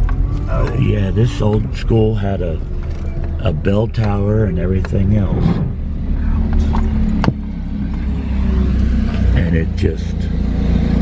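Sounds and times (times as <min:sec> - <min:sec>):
car driving rumble: 0:00.0 - 0:11.0.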